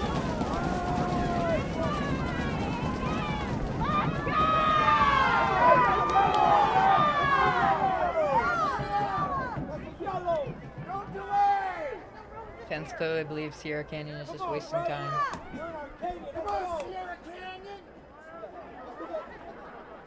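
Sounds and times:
many voices shouting: 0.0 - 9.7.

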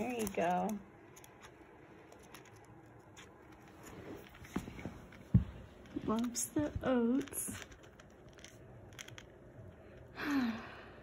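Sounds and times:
hamster nibbling oats: 0.0 - 10.2.

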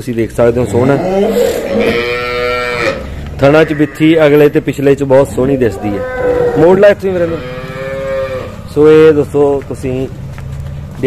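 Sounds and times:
cow mooing: 0.7 - 4.3, 5.5 - 8.7.

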